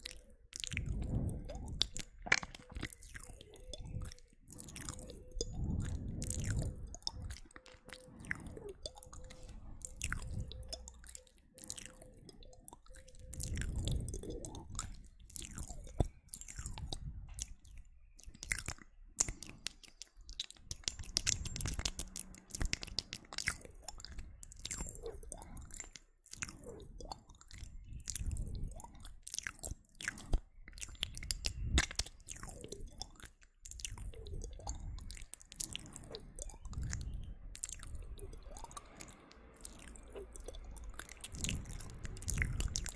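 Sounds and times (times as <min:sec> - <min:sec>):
wet mouth clicks and smacks: 0:00.0 - 0:42.9.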